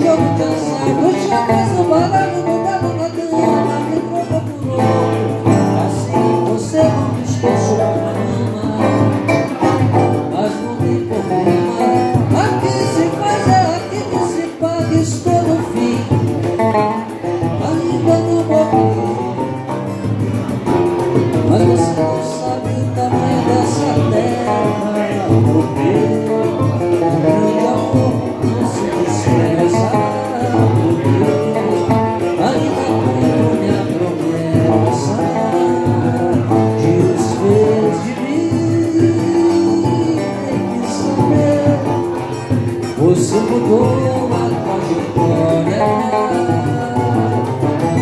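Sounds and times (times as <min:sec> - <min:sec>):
acoustic guitar strummed: 0:00.0 - 0:48.0
cavaquinho strummed: 0:00.0 - 0:48.0
man singing: 0:00.0 - 0:48.0.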